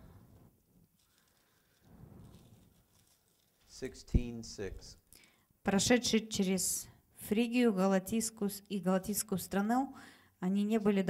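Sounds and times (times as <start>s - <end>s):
faint soft indistinct sound: 0.0s - 5.0s.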